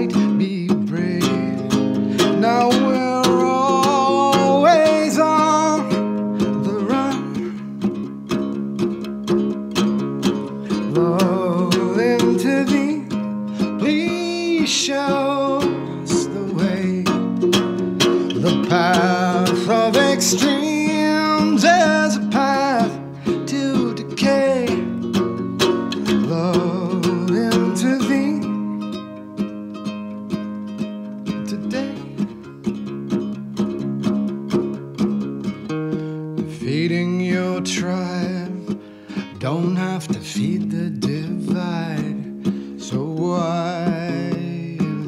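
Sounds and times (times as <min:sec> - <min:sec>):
man singing: 0:00.0 - 0:08.1, 0:10.3 - 0:29.2, 0:31.2 - 0:32.5, 0:35.9 - 0:45.0
ukulele strumming: 0:00.0 - 0:45.0.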